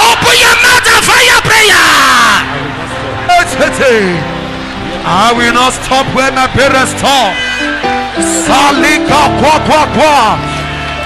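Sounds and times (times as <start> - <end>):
congregation shouting together: 0.0 - 2.5
held keyboard chord: 3.0 - 11.0.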